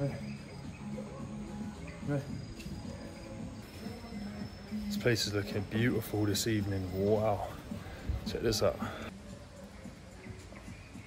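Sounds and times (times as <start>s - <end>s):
insects chirping: 0.0s - 9.1s
music of held low tones: 0.0s - 11.0s.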